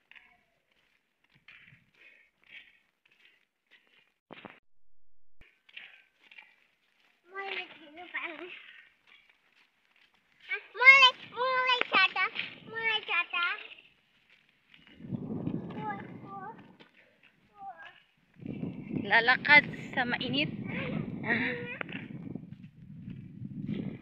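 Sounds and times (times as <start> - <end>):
people talking: 7.3 - 8.6, 10.5 - 13.7, 15.7 - 16.7, 19.0 - 22.0
child's voice: 7.3 - 8.8, 10.5 - 13.8, 15.7 - 16.8, 17.5 - 18.1, 20.6 - 21.9.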